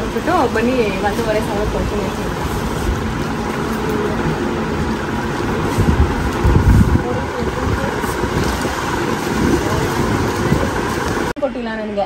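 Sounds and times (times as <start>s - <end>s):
indistinct background voices: 0.0s - 11.3s
steady low rumble: 0.0s - 11.4s.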